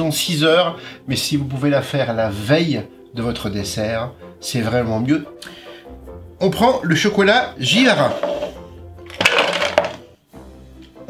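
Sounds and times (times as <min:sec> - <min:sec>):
chocolate pieces rattling into saucepan: 0:09.1 - 0:10.0.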